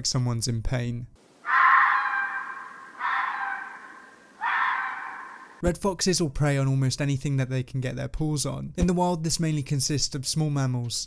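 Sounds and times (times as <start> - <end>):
fox screaming: 1.4 - 5.6.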